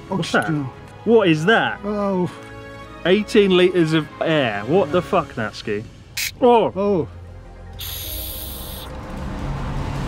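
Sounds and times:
faint background music: 0.0s - 10.0s
spray can hissing: 7.8s - 8.9s.

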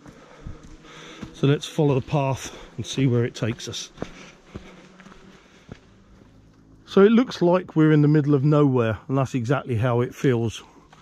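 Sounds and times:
footsteps on dirt path: 0.0s - 9.0s, 9.8s - 11.0s.

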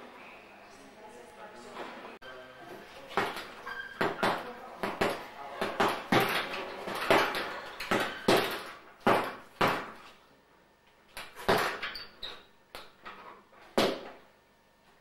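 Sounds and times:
punches thudding on heavy bag: 4.0s - 10.0s.

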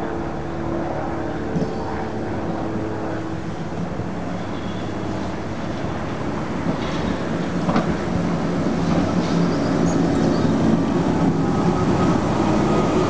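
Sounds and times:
railcar motor and gear hum: 0.0s - 13.0s.

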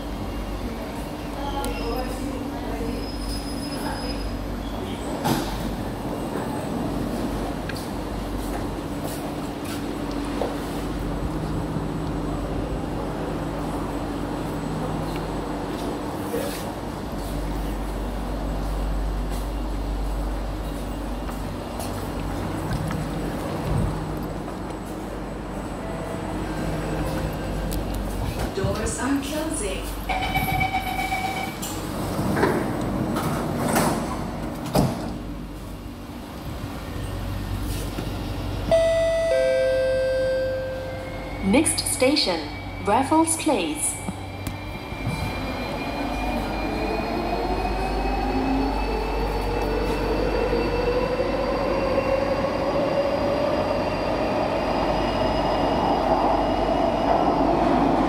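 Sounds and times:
train cabin rumble: 0.0s - 42.8s
two-note tone: 38.7s - 41.1s.

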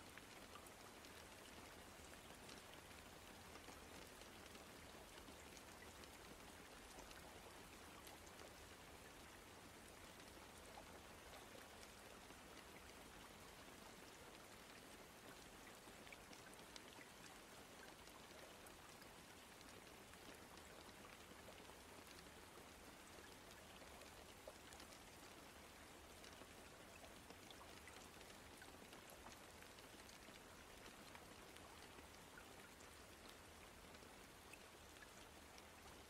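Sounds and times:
faint steady rain: 0.0s - 36.0s
light ticks of raindrops: 0.0s - 36.0s.

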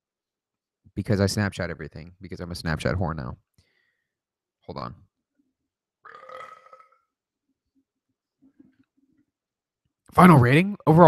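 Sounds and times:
man burping: 6.1s - 6.9s.

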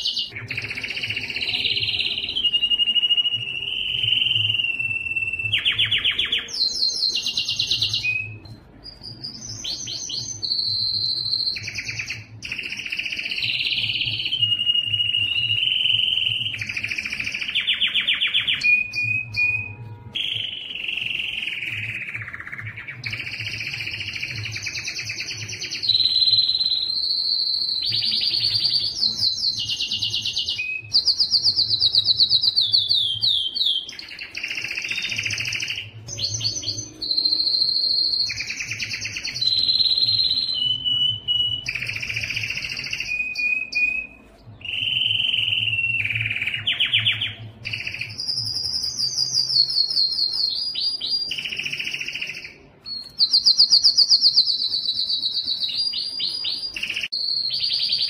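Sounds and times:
canary singing trills: 0.0s - 58.0s.

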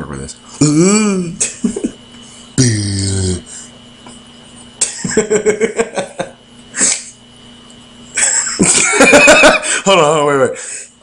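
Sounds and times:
faint electrical hum: 0.0s - 11.0s
person laughing: 4.8s - 7.1s, 8.2s - 9.9s.

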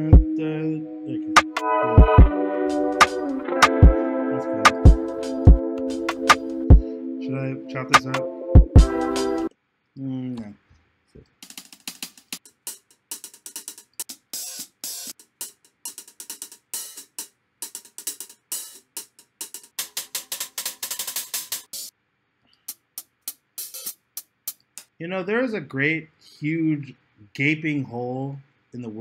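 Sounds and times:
crisp hi-hat patterns: 1.4s - 4.0s, 4.6s - 7.0s, 8.0s - 9.5s, 11.4s - 21.9s, 22.7s - 24.9s.

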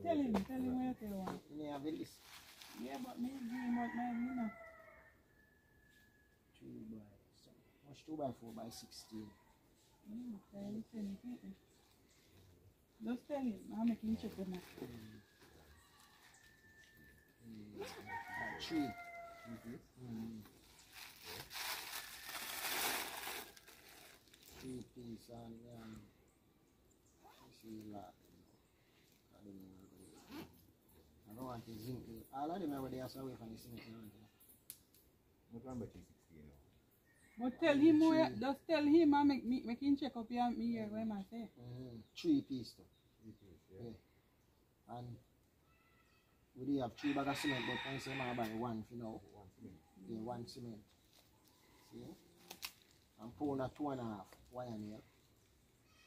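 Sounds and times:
bag rustling and crinkling: 20.6s - 24.6s.

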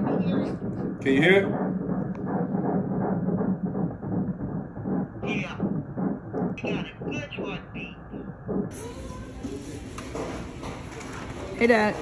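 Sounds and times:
doppler fetal heartbeat whoosh: 0.0s - 8.8s.

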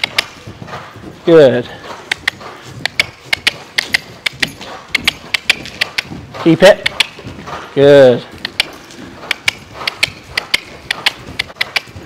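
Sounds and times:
horse hooves and tack clicking: 0.0s - 12.0s.

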